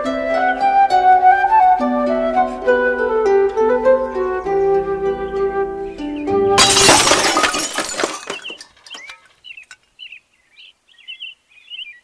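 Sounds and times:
music: 0:00.0 - 0:06.6
small birds chirping: 0:04.1 - 0:06.4, 0:08.3 - 0:12.0
loud shattering crash: 0:06.6 - 0:09.2.

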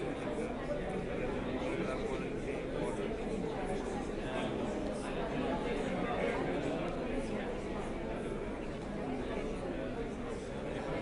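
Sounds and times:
babble of overlapping voices: 0:00.0 - 0:11.0.

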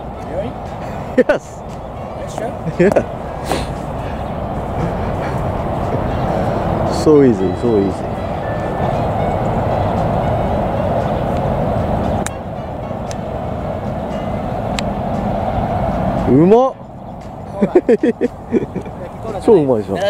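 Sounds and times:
outdoor rumble: 0:00.0 - 0:19.8.

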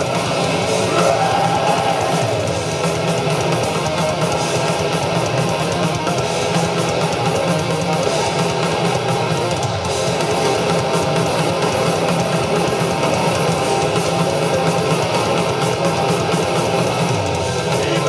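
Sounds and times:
bass guitar: 0:00.0 - 0:18.0
distorted electric guitars: 0:00.0 - 0:18.0
fast drums: 0:00.0 - 0:18.0.

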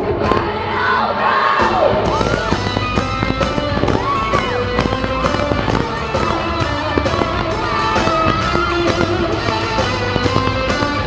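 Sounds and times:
steady drum beat: 0:01.6 - 0:11.0.

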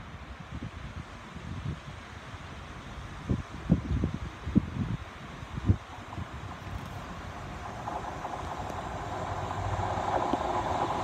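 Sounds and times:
diesel train engine: 0:00.0 - 0:11.0
wheels rumbling on rails: 0:00.0 - 0:11.0.

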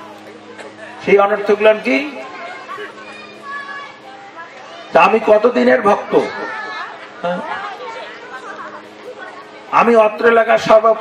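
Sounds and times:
faint steady hum: 0:00.0 - 0:11.0
overlapping voices chattering: 0:00.0 - 0:11.0.

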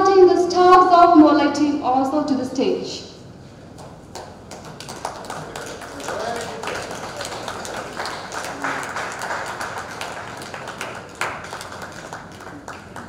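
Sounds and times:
audience applause: 0:04.2 - 0:13.0.

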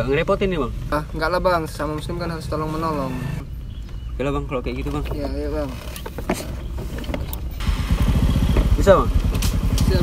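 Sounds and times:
scooter engine idling: 0:07.6 - 0:10.0.

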